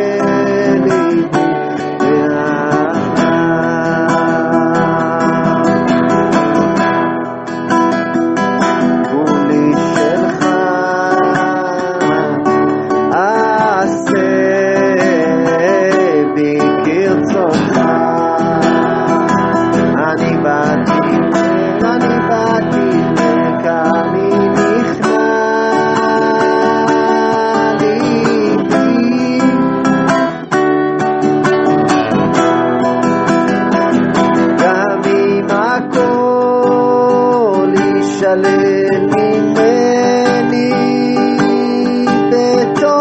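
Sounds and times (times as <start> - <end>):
acoustic guitar strumming: 0.0 - 43.0
person singing: 0.0 - 43.0.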